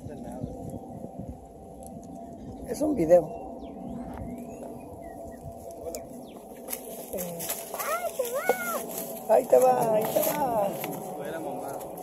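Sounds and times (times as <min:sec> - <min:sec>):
birds chirping faintly: 0:00.0 - 0:12.0
person exclaiming: 0:07.8 - 0:08.9.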